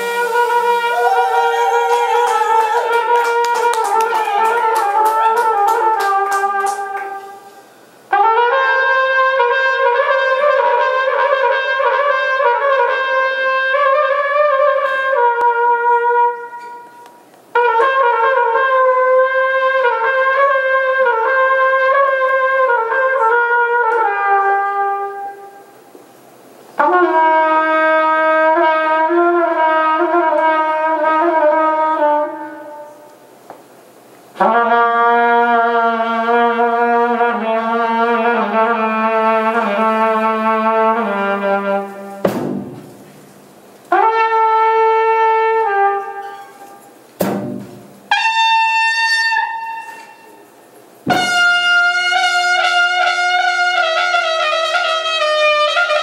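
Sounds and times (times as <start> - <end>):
solo trumpet sustained notes: 0.0 - 25.8, 26.8 - 33.2, 34.4 - 43.0, 43.9 - 47.0, 48.1 - 56.0.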